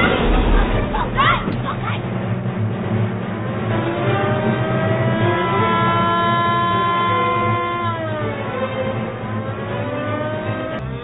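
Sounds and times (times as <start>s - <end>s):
electric motor siren wailing: 3.6s - 11.0s.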